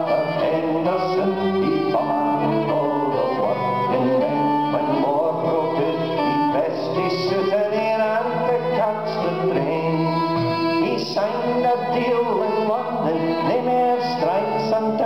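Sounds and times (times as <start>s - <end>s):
fiddle melody: 0.0s - 15.0s.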